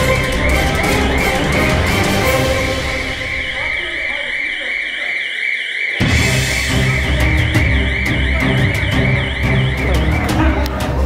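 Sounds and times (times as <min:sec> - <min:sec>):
fire alarm warbling tone: 0:00.0 - 0:10.8.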